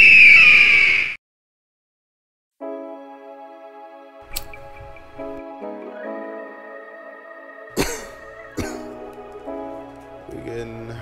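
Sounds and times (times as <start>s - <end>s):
bird of prey screech: 0.0s - 1.2s.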